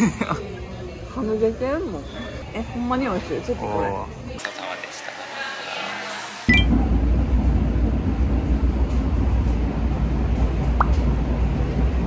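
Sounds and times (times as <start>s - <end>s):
train car rumbling: 6.7s - 12.0s.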